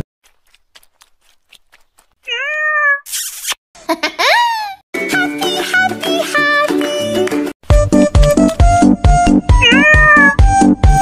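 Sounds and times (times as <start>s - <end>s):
cat meowing: 2.3s - 3.0s, 9.6s - 10.4s.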